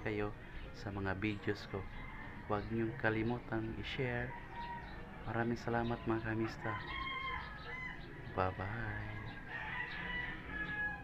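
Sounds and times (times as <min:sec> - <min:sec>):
rooster crowing: 0:01.9 - 0:02.7, 0:06.4 - 0:11.0.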